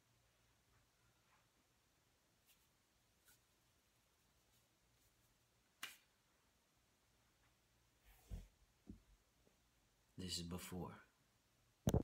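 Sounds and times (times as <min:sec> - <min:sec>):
short sharp snap: 0:05.8 - 0:06.1.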